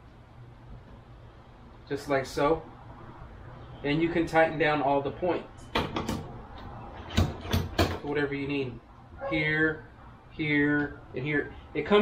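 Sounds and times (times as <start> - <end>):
sharp knocks on pole mount: 7.1 - 8.0.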